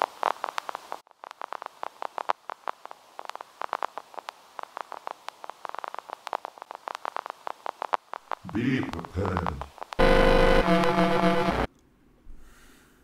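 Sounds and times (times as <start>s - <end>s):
faint hiss: 0.0s - 10.0s
crackling clicks: 0.0s - 11.9s.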